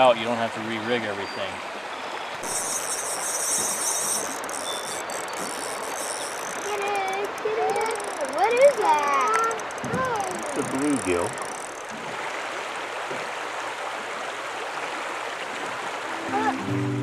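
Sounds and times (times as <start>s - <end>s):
river water rushing: 0.0s - 17.0s
voices: 6.3s - 11.8s.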